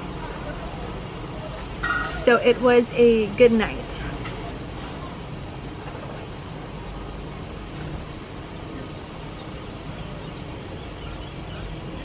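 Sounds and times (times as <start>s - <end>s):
outdoor low rumble: 0.0s - 12.0s.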